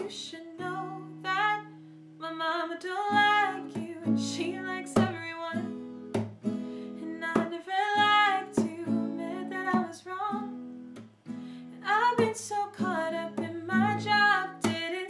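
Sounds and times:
woman singing: 0.0 - 5.8, 6.9 - 10.6, 11.7 - 15.0
acoustic guitar strumming: 3.0 - 15.0.

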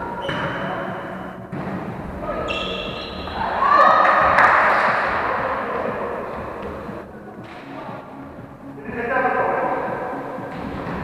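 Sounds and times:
echoing sports hall noise: 0.0 - 11.0.

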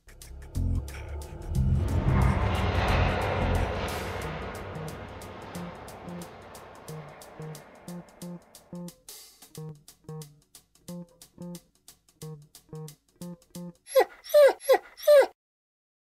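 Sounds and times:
plucked guitar notes: 9.6 - 10.3, 10.9 - 11.6, 12.2 - 13.8
dog whimpers: 13.9 - 15.4.

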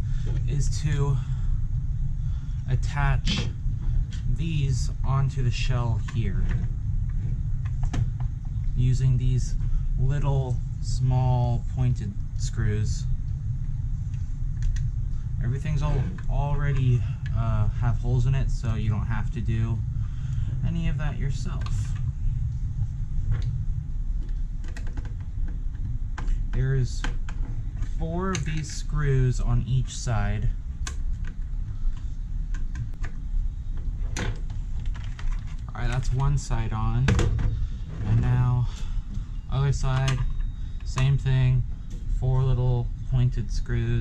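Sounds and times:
low background rumble: 0.0 - 44.0
steady low hum: 0.0 - 44.0.

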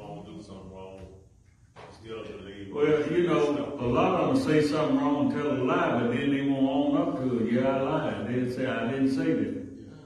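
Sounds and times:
man talking: 0.0 - 1.2, 1.8 - 10.0.

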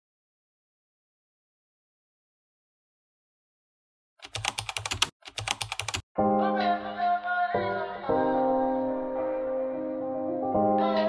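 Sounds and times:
rapid clicking: 4.2 - 6.0.

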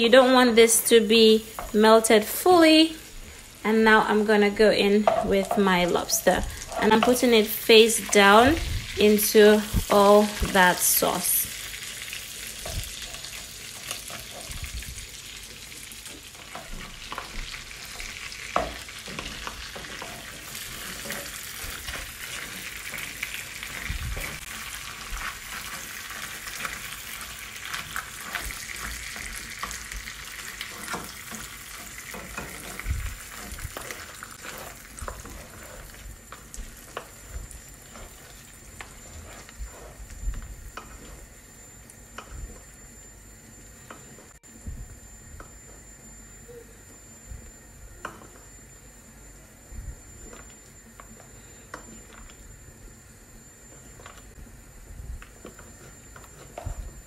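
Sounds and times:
butter sizzling in a pan: 0.2 - 42.6.

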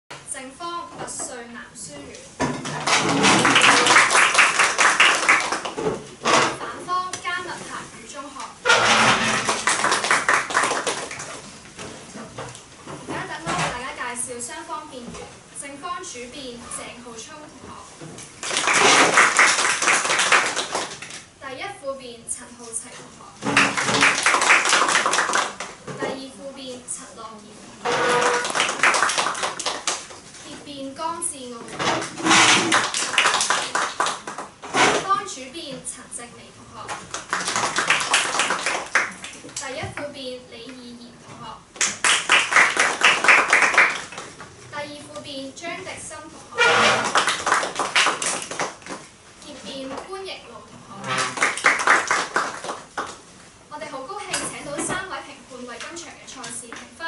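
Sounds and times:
small group applauding: 2.7 - 5.9, 8.7 - 11.5, 18.4 - 21.2, 23.4 - 25.8, 27.8 - 30.2, 32.0 - 34.6, 36.9 - 39.6, 41.8 - 44.4, 46.6 - 49.1, 51.0 - 53.3
people clapping: 2.7 - 6.0, 8.7 - 11.5, 18.4 - 21.2, 23.4 - 25.8, 27.8 - 30.2, 32.2 - 34.6, 36.9 - 39.6, 41.8 - 44.4, 46.6 - 49.1, 51.0 - 53.3.

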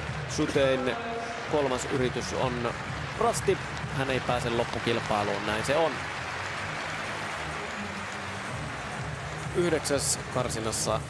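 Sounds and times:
indoor crowd noise: 0.0 - 11.0.

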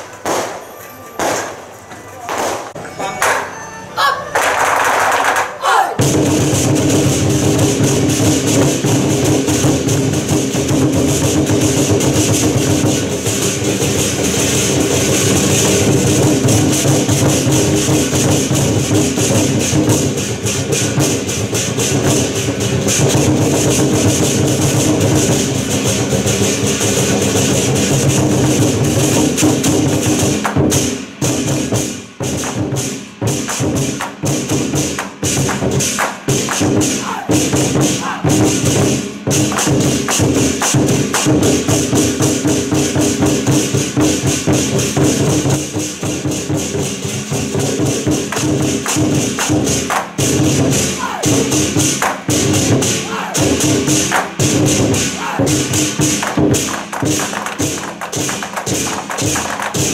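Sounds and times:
large drums struck with sticks: 6.0 - 59.9.

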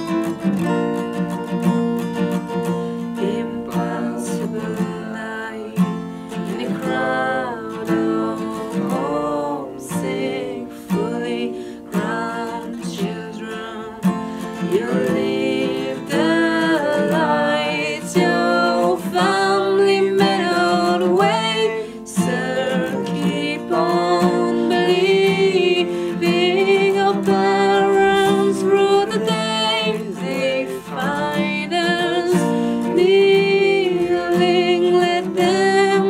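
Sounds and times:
strummed acoustic guitar: 0.0 - 36.0
man and woman singing: 2.9 - 36.0.

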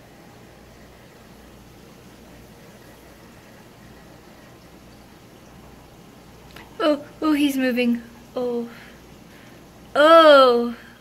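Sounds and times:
aquarium pump hum and water circulation: 0.0 - 11.0.

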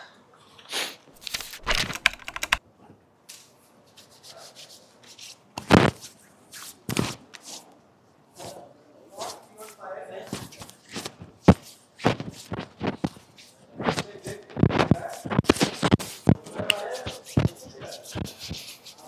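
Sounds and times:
hands rubbing cream on skin: 9.2 - 19.0.

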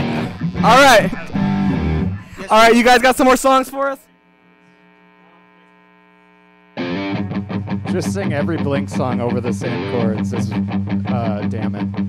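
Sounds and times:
electric guitar strumming: 0.0 - 2.6, 6.8 - 12.0
voices: 0.0 - 5.9.

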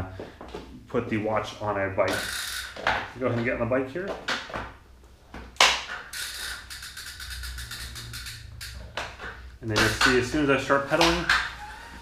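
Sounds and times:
bicycle drivetrain ticking: 2.1 - 2.8, 6.1 - 9.1
bike clicks and knocks: 2.1 - 11.5.

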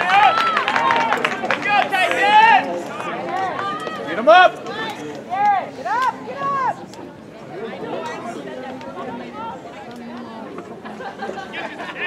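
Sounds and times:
high voices shouting: 0.0 - 6.8.

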